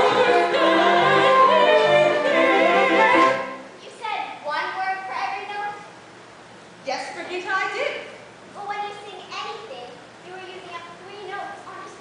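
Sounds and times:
young performer speaking: 7.8s - 12.0s.

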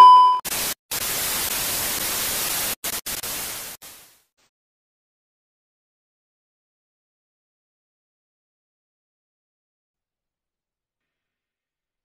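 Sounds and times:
television static hiss: 0.5s - 4.3s.

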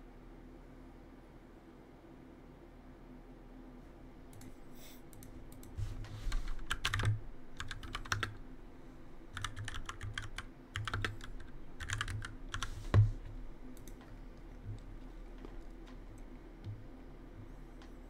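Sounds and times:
keyboard keys clattering: 9.4s - 12.6s.

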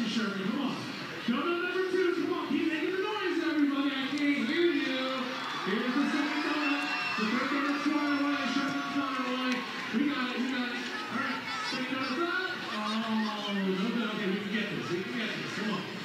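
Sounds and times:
crowd noise: 0.0s - 16.0s
man talking over public address: 0.0s - 16.0s.

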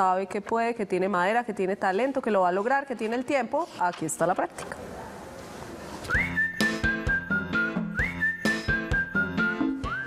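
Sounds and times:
whistled tune: 6.1s - 10.0s
music with a beat: 6.2s - 10.0s.

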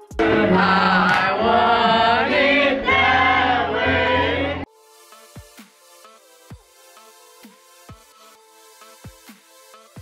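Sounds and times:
piano: 0.0s - 5.3s
people singing together: 0.1s - 4.7s.

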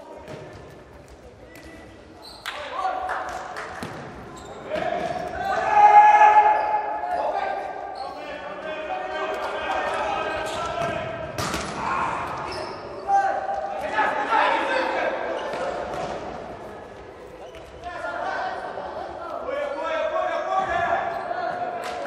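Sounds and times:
ball kicked and bouncing indoors: 0.2s - 1.2s, 3.7s - 5.3s
players shouting: 4.6s - 16.2s.

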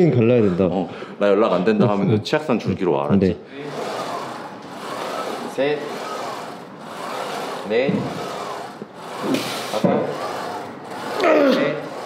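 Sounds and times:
squat machine squealing: 0.0s - 0.9s, 3.7s - 12.0s.

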